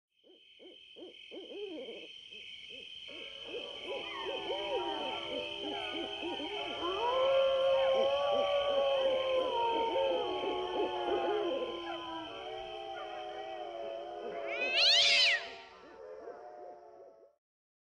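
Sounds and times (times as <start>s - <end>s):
animal hooting calls: 3.1s - 16.4s
long held animal call: 3.1s - 17.3s.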